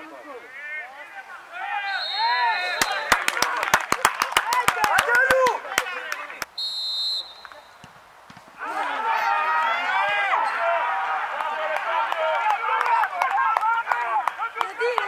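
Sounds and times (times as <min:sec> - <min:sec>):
referee's whistle blast: 0:01.8 - 0:03.1, 0:06.6 - 0:07.8
men shouting over one another: 0:08.6 - 0:15.0.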